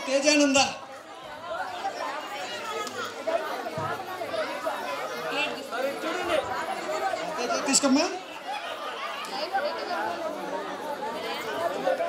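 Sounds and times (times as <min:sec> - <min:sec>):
crowd chatter: 0:00.0 - 0:12.0.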